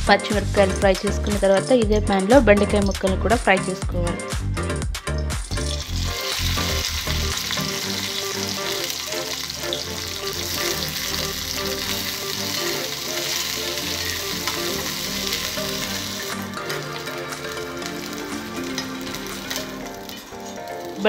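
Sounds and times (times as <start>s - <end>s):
okra sizzling in hot oil: 5.5s - 21.0s.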